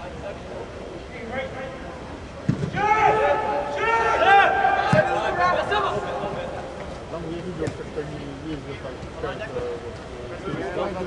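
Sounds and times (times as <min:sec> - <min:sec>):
players shouting: 0:02.5 - 0:07.8.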